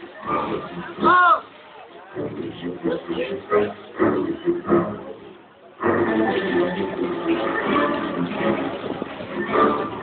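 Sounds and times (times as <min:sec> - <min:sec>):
music: 0:00.0 - 0:10.0.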